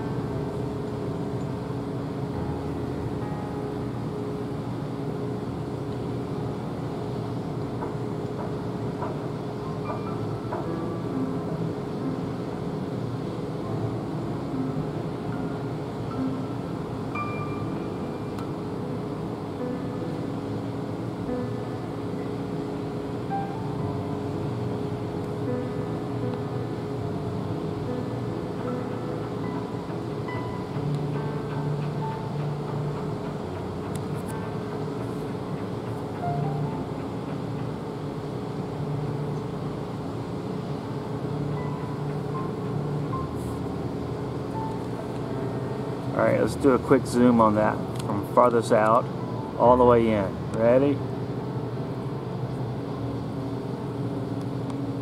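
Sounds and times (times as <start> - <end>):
low mechanical hum: 0.0 - 55.0.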